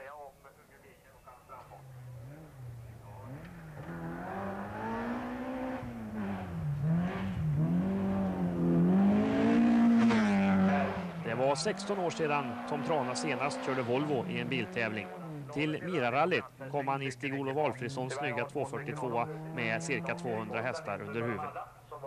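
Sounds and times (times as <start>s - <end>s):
rally car engine revving: 1.7s - 21.4s.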